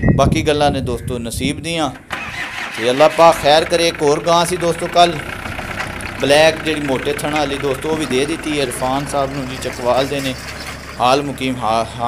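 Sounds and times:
voices talking: 0:00.0 - 0:12.0
diesel engine starting and running: 0:01.4 - 0:12.0.

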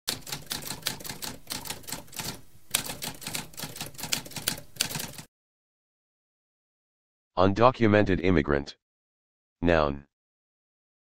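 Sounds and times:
mechanical typewriter keys clacking: 0:00.1 - 0:05.2.

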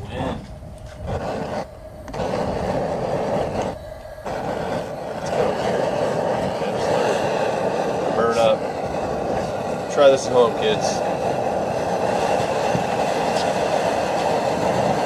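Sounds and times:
gas burner flame rushing: 0:00.0 - 0:15.0.

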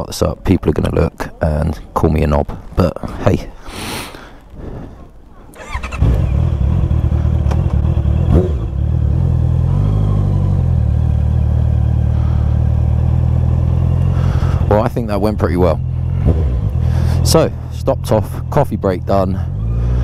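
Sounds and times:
motorcycle engine starting and running: 0:05.6 - 0:20.0.

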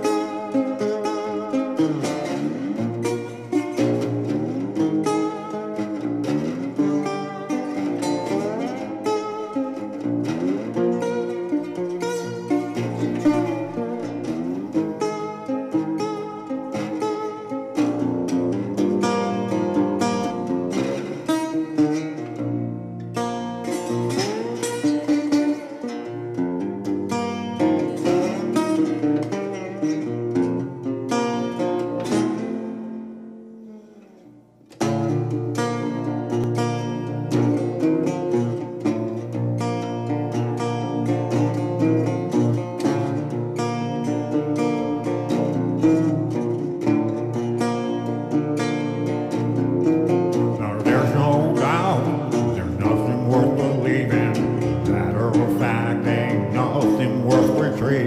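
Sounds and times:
resonator guitar blues picking: 0:00.0 - 0:58.0.

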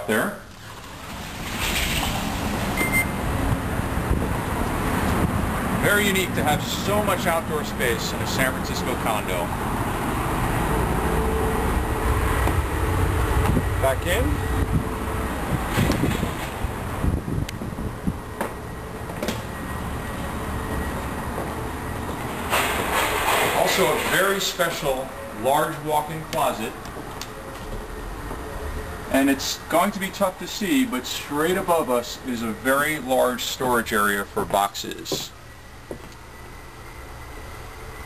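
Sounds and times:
low traffic rumble: 0:00.0 - 0:38.0
short high beep: 0:02.8 - 0:03.2
wind on microphone: 0:12.6 - 0:13.8, 0:14.4 - 0:18.4
footsteps indoors: 0:18.4 - 0:24.0, 0:26.3 - 0:28.9, 0:34.4 - 0:36.3.

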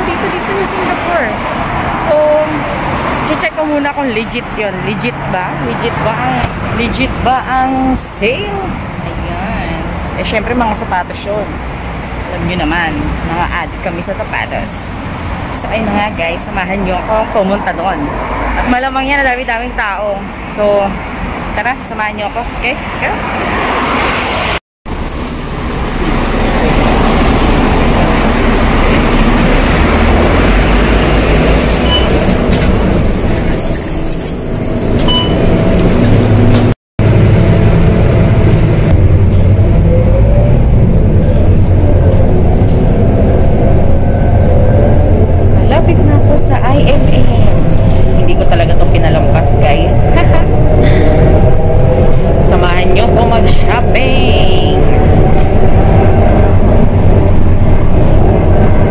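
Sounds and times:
bus engine and road rumble: 0:00.0 - 0:58.9
rising engine whine: 0:33.8 - 0:58.9.

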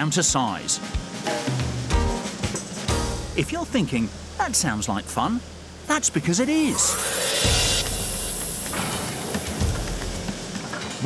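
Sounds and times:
rolling mill loud hiss: 0:00.0 - 0:11.0
rising whoosh: 0:06.6 - 0:09.0.

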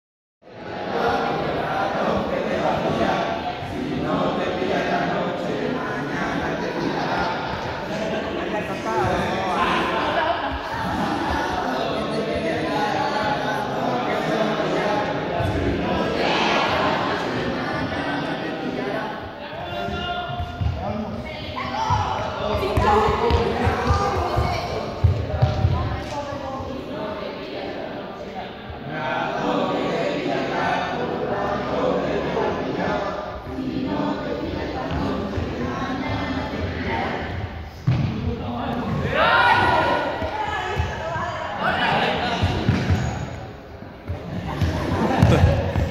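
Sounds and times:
group of people talking: 0:00.4 - 0:45.9.

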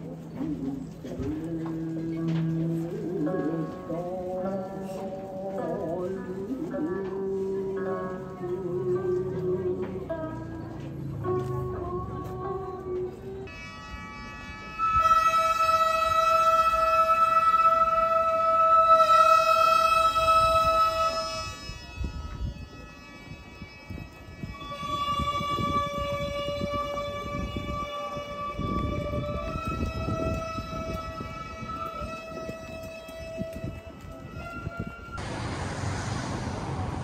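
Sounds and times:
long held wind instrument notes: 0:00.0 - 0:37.0
low street noise: 0:00.0 - 0:37.0.

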